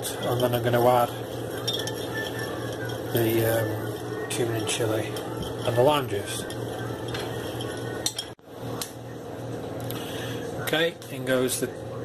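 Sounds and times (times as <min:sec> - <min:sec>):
teaspoon stirring in glass jug: 0:00.0 - 0:08.4.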